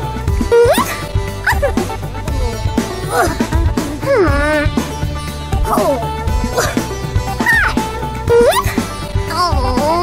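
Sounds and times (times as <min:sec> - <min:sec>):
cartoon music with low beat: 0:00.0 - 0:10.0
cartoon baby whimpering: 0:00.4 - 0:04.8, 0:05.7 - 0:06.8, 0:07.4 - 0:10.0.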